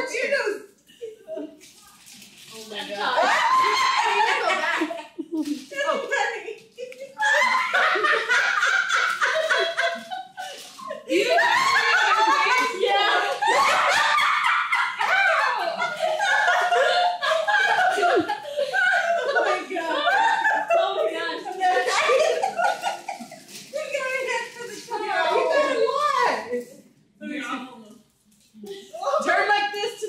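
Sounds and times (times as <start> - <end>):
people laughing and talking: 0.0 - 1.8, 2.8 - 27.6, 28.5 - 30.0.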